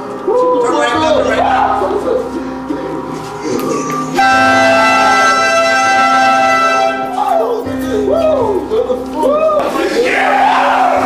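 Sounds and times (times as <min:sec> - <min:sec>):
loud horn blast: 0:04.1 - 0:07.2.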